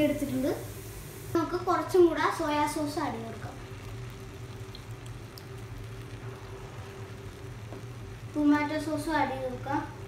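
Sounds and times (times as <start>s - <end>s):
constant low hum: 0.0s - 10.0s
faint sizzle in a pan: 0.0s - 10.0s.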